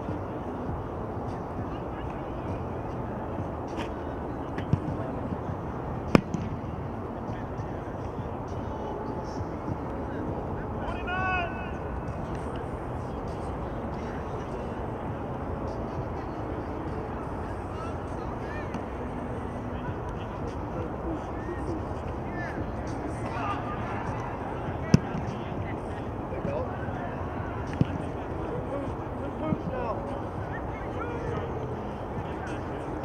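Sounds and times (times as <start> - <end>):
outdoor ambience: 0.0 - 33.0
football being kicked: 4.6 - 5.1, 6.1 - 6.6, 27.7 - 28.0
distant shout: 10.5 - 12.5, 17.0 - 32.9.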